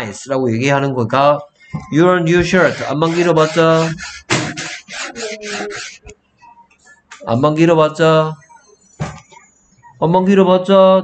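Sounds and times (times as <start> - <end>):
stylus rubbing on tablet screen: 2.4 - 6.1.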